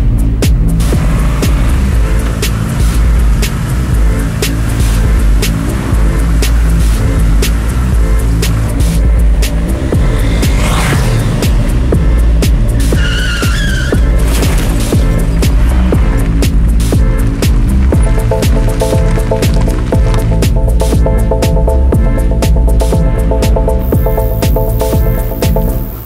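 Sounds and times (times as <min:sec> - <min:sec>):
low bass notes: 0:00.0 - 0:26.0
steady ticking beat: 0:00.0 - 0:26.0
rising whoosh: 0:04.8 - 0:16.9
wavering high squeal: 0:12.7 - 0:15.4.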